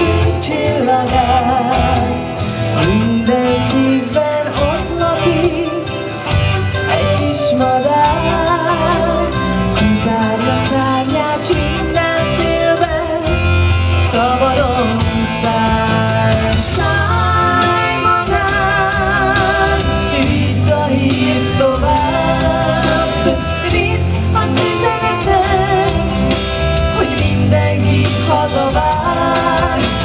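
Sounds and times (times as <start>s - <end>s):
instrumental accompaniment: 0.0s - 30.0s
woman singing with vibrato: 0.0s - 30.0s.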